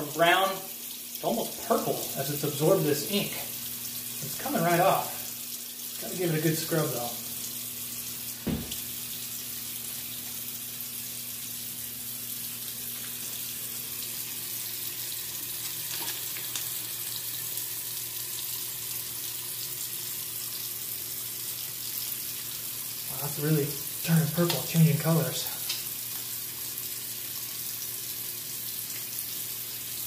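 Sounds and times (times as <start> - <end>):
faucet running into sink: 0.0 - 30.0
short knock: 8.4 - 8.8.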